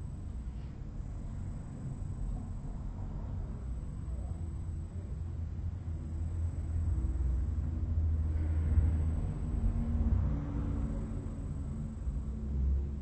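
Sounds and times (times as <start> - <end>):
low background rumble: 0.0 - 13.0.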